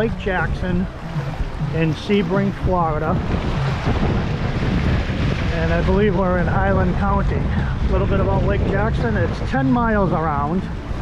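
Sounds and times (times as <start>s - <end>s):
water splashing against pier: 0.0s - 11.0s
wind buffeting microphone: 0.0s - 11.0s.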